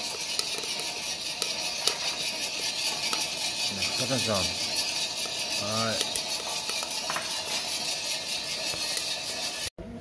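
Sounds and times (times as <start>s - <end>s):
coffee beans rattling in drum: 0.0s - 9.7s.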